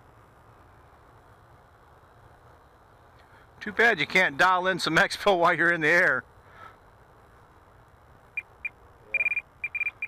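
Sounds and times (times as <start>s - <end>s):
short high electronic beeps: 8.4s - 10.0s.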